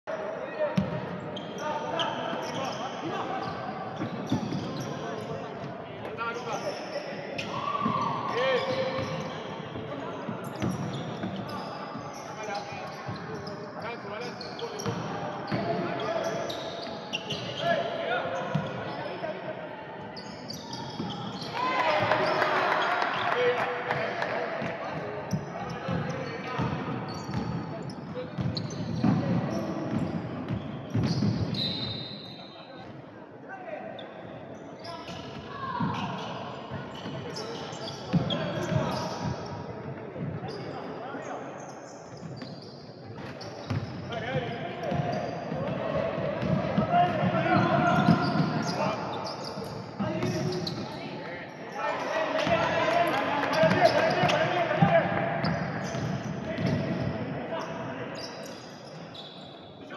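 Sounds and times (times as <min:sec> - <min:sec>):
indistinct echoing voices: 0:43.0 - 0:58.3.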